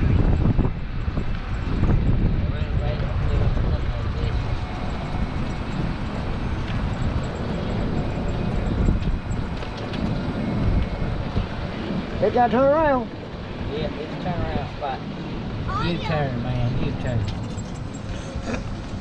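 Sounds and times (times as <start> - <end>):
tyre and road noise: 0.0 - 19.0
wind on microphone: 0.0 - 19.0.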